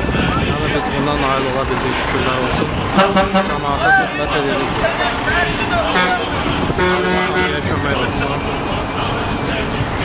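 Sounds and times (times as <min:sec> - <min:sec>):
bus engines running: 0:00.0 - 0:10.0
voices: 0:00.0 - 0:10.0
bus horn: 0:02.9 - 0:04.1, 0:05.8 - 0:07.9.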